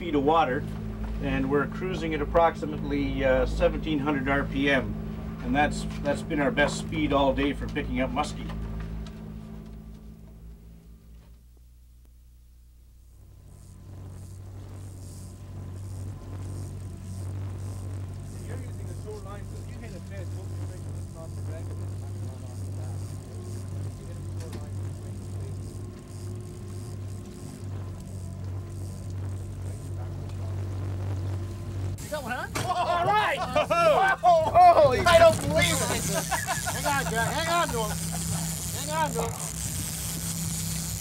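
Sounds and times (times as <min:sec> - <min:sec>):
boat engine humming: 0:00.0 - 0:41.0.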